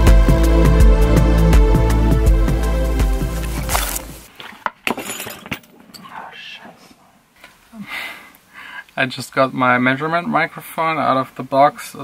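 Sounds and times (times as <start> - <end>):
electronic house music: 0.0 - 4.3.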